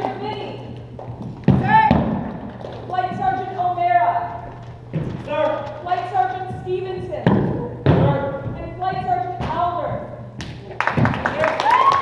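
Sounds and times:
boot stamps on wooden floor: 0:06.4 - 0:11.1.

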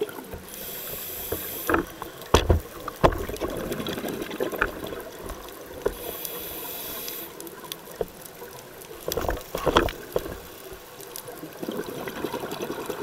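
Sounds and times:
regulator inhale hiss: 0:00.4 - 0:02.3, 0:05.9 - 0:07.6
exhaled bubbles rushing: 0:02.7 - 0:05.8, 0:11.6 - 0:13.0.

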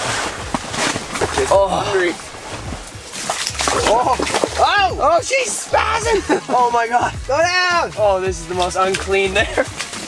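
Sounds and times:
water sloshing and splashing: 0:00.0 - 0:10.0.

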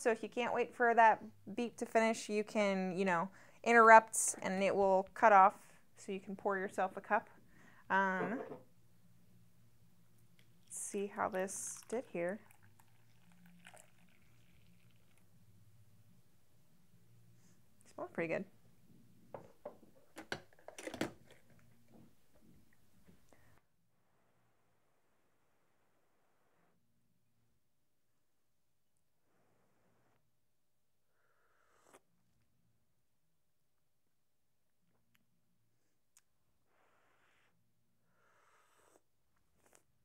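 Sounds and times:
sip of hot coffee: 0:11.8 - 0:15.2.

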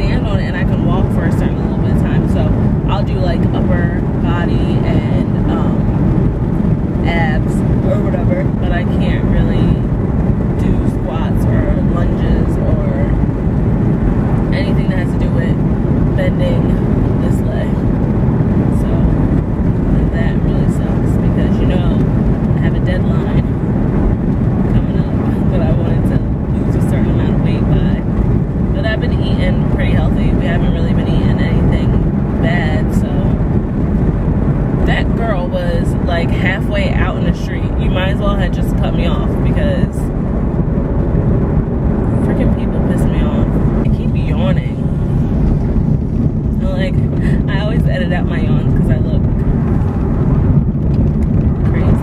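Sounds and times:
woman talking: 0:00.0 - 0:06.0, 0:07.0 - 0:09.9, 0:10.5 - 0:13.2, 0:14.5 - 0:17.8, 0:18.6 - 0:23.6, 0:24.7 - 0:28.1, 0:28.7 - 0:33.5, 0:34.8 - 0:40.1, 0:42.0 - 0:45.2, 0:46.5 - 0:49.5, 0:51.6 - 0:52.0
car road and engine noise: 0:00.0 - 0:52.0.

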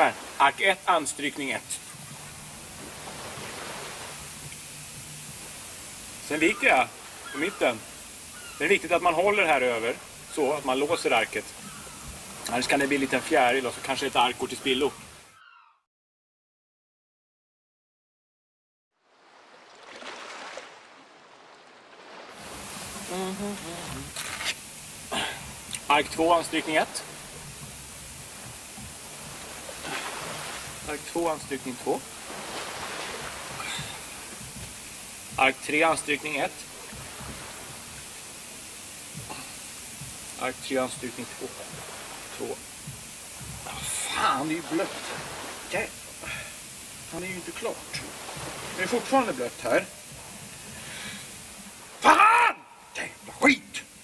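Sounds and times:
steady hiss: 0:00.0 - 0:15.3, 0:22.3 - 0:54.0.

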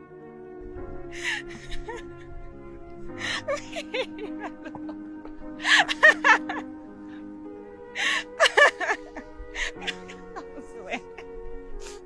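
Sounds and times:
man laughing: 0:01.2 - 0:02.6, 0:03.2 - 0:07.0, 0:08.0 - 0:11.3.

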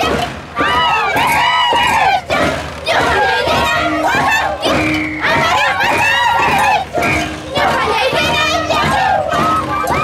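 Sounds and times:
people singing in high voices: 0:00.0 - 0:10.0.

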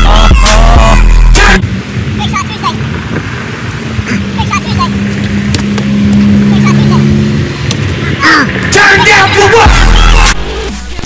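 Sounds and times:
voices: 0:00.0 - 0:03.3, 0:03.9 - 0:10.9
car engine drone: 0:00.0 - 0:11.0.

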